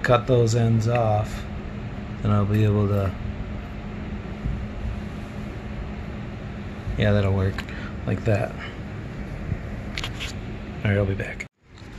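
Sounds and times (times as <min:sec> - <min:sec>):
steady machine hum: 0:00.0 - 0:11.9.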